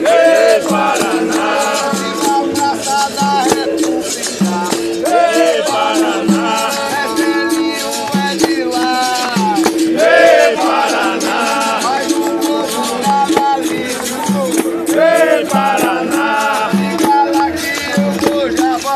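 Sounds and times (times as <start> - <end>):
berimbau repeating figure: 0.0 - 18.9
hand drum: 0.0 - 18.9
shakers rattling: 0.0 - 18.9
voices singing: 0.0 - 18.9.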